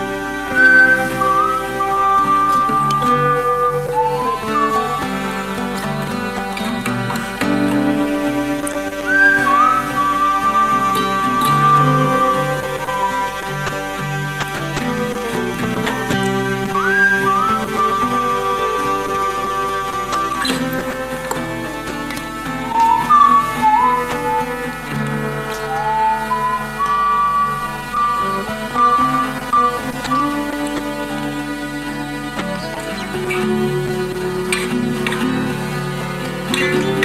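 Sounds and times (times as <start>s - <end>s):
acoustic guitar chords: 0.0s - 37.0s
person whistling a melody: 0.4s - 5.4s, 9.0s - 13.8s, 16.7s - 20.6s, 22.7s - 30.6s.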